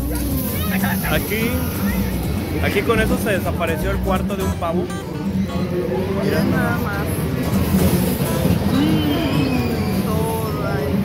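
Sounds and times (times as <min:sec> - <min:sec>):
background music: 0:00.0 - 0:11.0
voices: 0:00.0 - 0:11.0.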